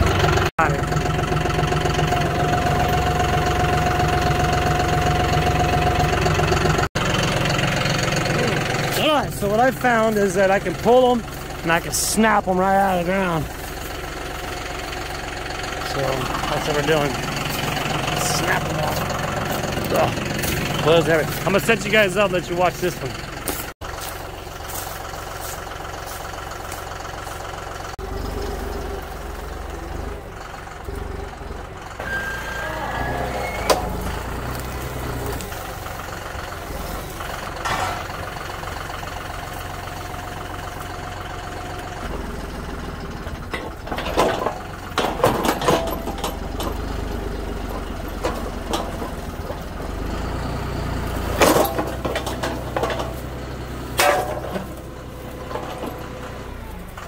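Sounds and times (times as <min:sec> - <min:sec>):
fence posts cracking and clanking: 0:00.0 - 0:28.0, 0:33.1 - 0:57.0
tractor engine working: 0:00.0 - 0:57.0.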